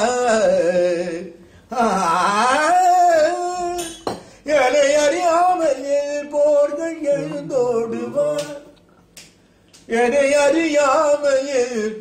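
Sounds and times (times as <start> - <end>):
man singing solo: 0.0 - 8.7.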